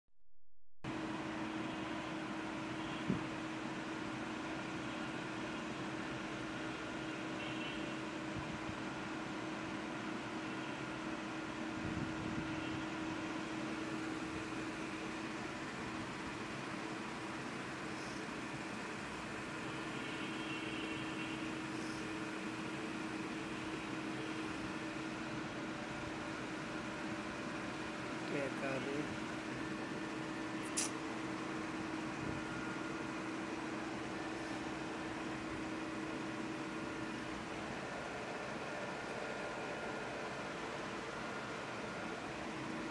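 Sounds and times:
mechanical hum with hiss: 0.9 - 42.9
sharp click: 30.6 - 31.0.

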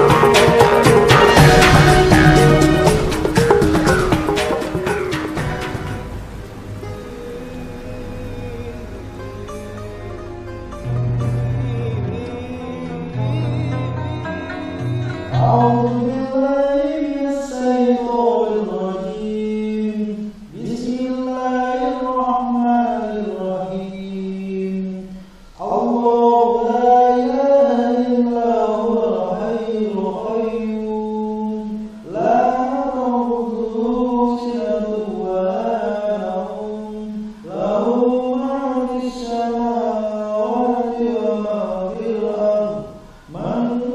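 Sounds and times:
person chanting recitation: 0.0 - 5.4, 6.6 - 43.9
breaths: 25.1 - 25.6, 43.0 - 43.4.

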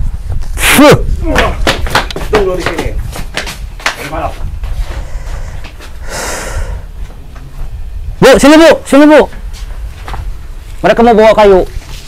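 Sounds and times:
person exhaling breathy huff: 5.0 - 6.9.

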